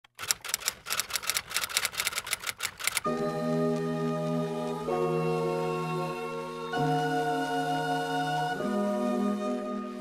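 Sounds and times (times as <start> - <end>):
fast sharp clicks: 0.0 - 3.2
held chord of background music: 3.0 - 10.0.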